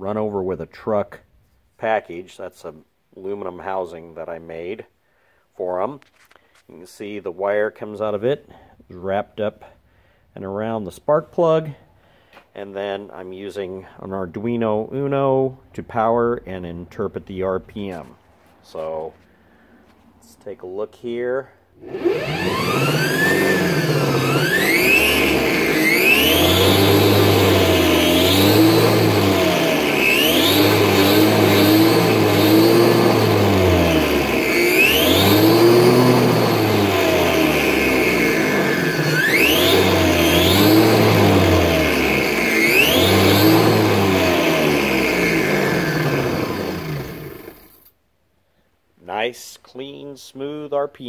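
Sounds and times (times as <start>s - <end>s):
petrol engine revving: 21.8s - 47.9s.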